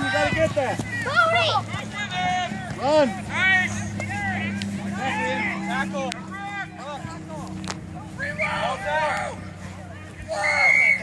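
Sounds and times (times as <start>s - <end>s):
players and spectators shouting: 0.0s - 11.0s.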